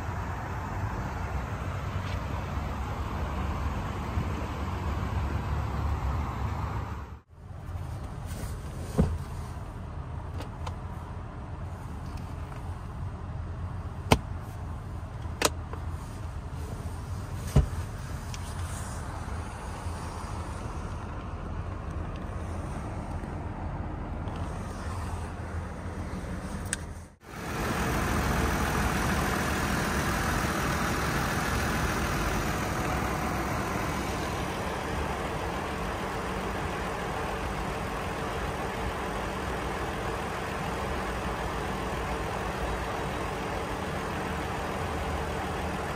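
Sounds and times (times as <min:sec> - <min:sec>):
car engine idling: 0:09.4 - 0:45.9.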